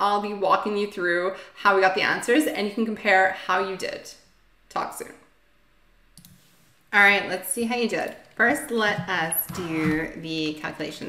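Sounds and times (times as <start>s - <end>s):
woman speaking: 0.0s - 5.3s, 6.9s - 11.0s
computer mouse click: 6.2s - 6.4s.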